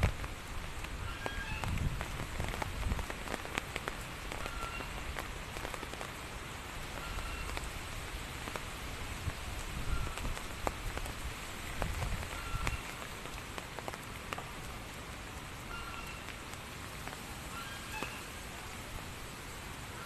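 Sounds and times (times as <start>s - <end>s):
rain pattering: 0.0s - 20.0s.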